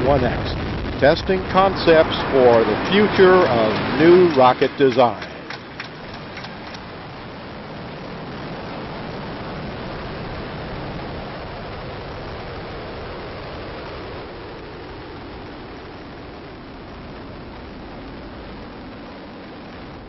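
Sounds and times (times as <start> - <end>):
rocket motor rushing roar: 0.0 - 10.3.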